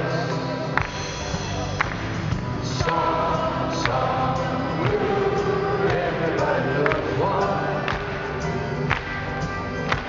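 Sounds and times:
man singing: 0.0 - 0.8, 2.6 - 8.5
live pop band playing: 0.0 - 10.0.

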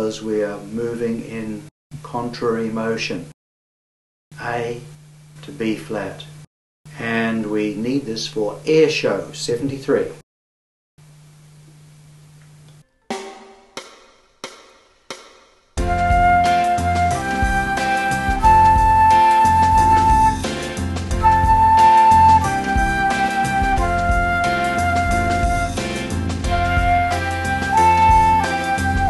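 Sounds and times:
flute playing a slow melody: 15.8 - 20.5, 21.2 - 25.8, 26.5 - 29.0
backing track with bass and beat: 15.8 - 29.0.

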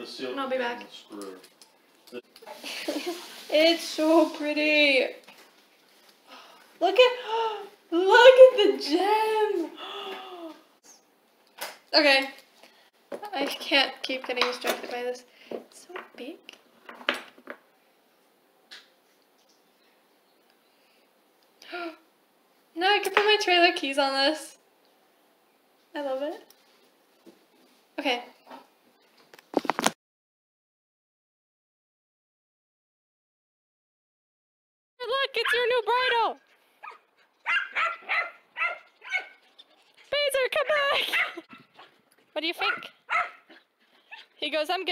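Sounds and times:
dog barking: 35.4 - 35.7, 36.8 - 39.4, 41.1 - 41.9, 42.6 - 43.5.

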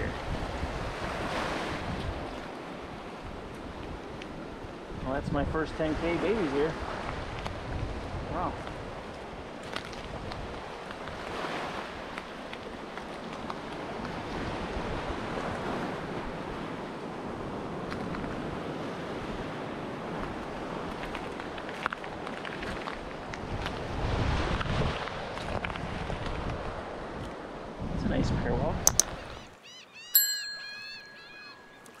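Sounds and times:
surf washing onto beach: 0.0 - 27.6
wind on microphone: 0.0 - 29.5
pitch-bending blips: 30.1 - 32.0
bright bell ding: 30.2 - 32.0.

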